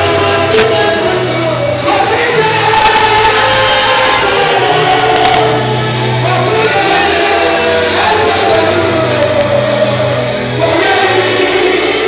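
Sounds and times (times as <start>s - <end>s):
amplified band: 0.0s - 12.0s
group singing gospel: 0.0s - 12.0s
held bass notes: 0.0s - 12.0s.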